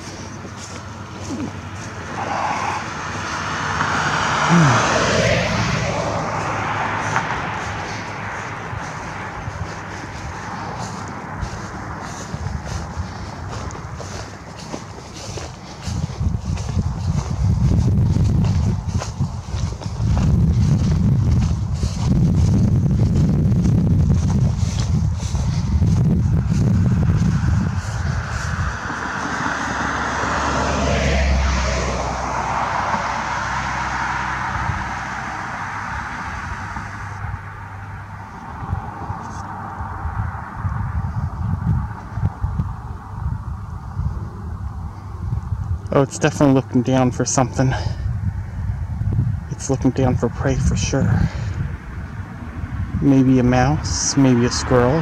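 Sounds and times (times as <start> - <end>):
vehicle passing: 0.0 - 55.0
wind rumbling on microphone: 0.0 - 55.0.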